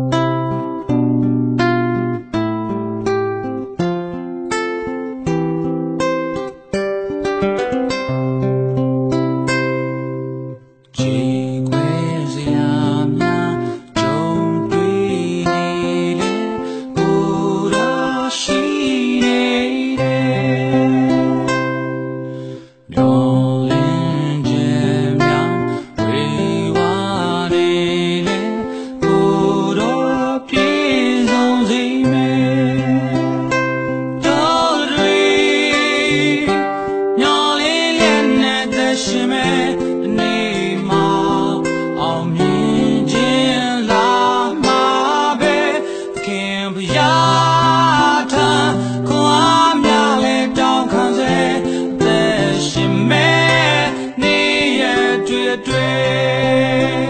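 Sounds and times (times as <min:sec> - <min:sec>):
person singing: 0:10.9 - 0:57.0.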